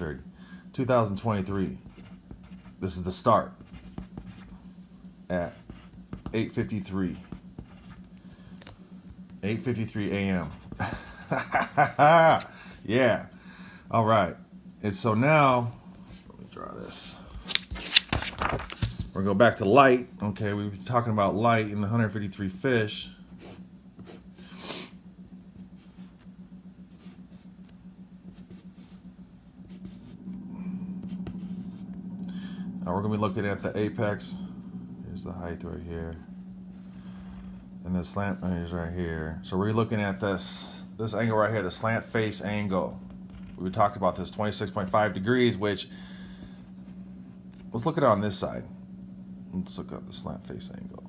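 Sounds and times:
steady low hum: 0.0 - 51.0
pencil scratching on paper: 1.2 - 2.9, 3.5 - 4.6, 5.4 - 8.1, 10.4 - 10.8, 23.3 - 24.3, 26.9 - 27.5, 28.3 - 30.2, 36.2 - 37.7, 43.0 - 43.8
pencil writing on paper: 1.8 - 2.8, 3.6 - 4.5, 5.5 - 6.4, 26.9 - 27.5, 36.7 - 37.6.

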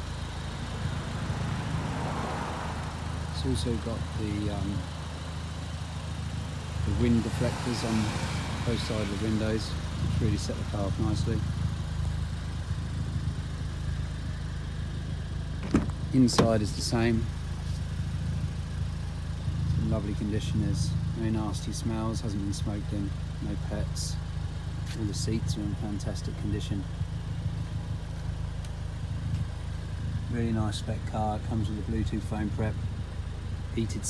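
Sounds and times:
car engine idling: 0.0 - 34.0.

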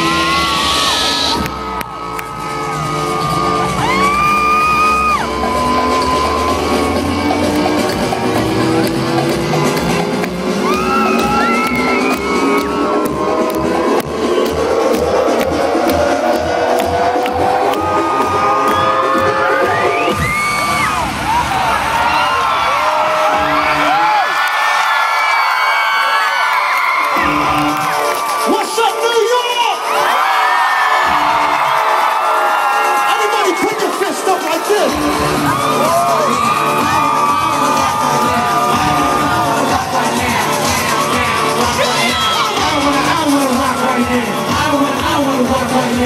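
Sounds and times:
concert music over loudspeakers: 0.0 - 46.0
crowd screaming and cheering: 0.0 - 46.0.

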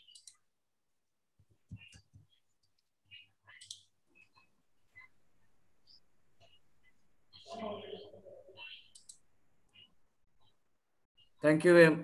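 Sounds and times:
faint clicks: 8.9 - 9.9.

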